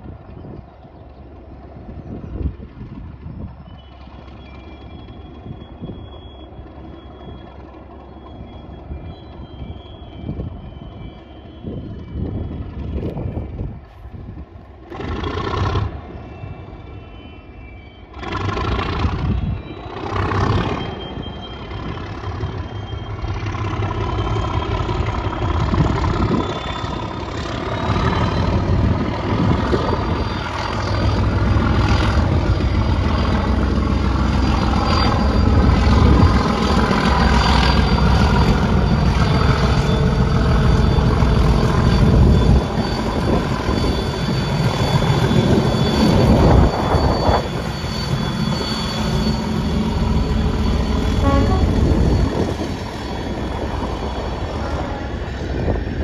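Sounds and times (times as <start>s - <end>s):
diesel locomotive engine rumble: 0.0s - 56.0s
turbocharger whistle: 3.6s - 13.6s, 15.0s - 56.0s
gusty bursts: 18.1s - 56.0s.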